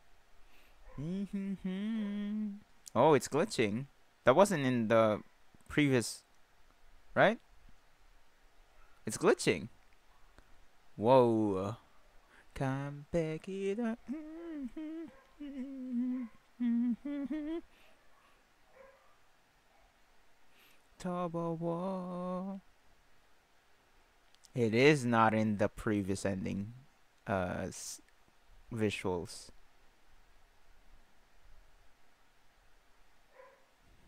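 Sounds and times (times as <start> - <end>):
man humming: 0.9 - 3.1, 11.0 - 11.8, 12.5 - 17.7, 21.0 - 22.6.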